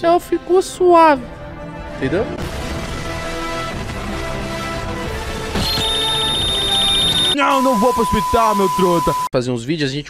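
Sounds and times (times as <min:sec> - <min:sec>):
music: 0:00.0 - 0:09.2
high pulsing electronic beep: 0:05.6 - 0:09.3.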